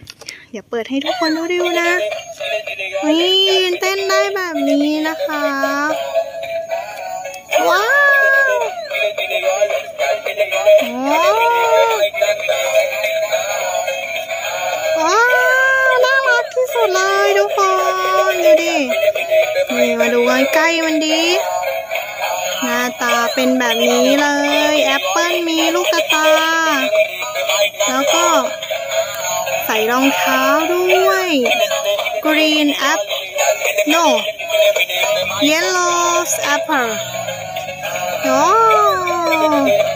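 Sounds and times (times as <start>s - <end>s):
toy speakers playing electronic music: 0.0s - 39.9s.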